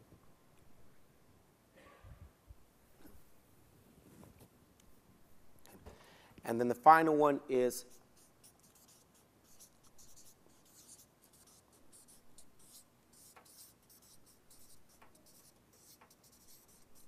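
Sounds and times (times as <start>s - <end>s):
marker squeaking on paper: 7.9s - 17.0s.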